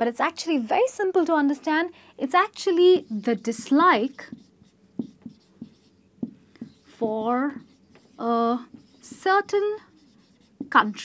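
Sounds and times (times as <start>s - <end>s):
marker writing on whiteboard: 2.9s - 11.0s.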